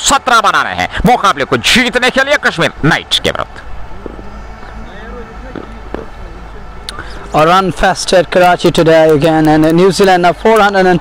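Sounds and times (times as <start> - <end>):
faint distant voices: 0.1 - 11.0
low outdoor rumble: 2.5 - 10.4.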